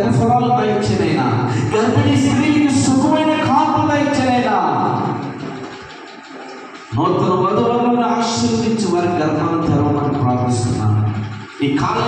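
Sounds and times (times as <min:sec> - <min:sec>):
man's voice through a pa system: 0:00.0 - 0:05.4, 0:06.9 - 0:12.0.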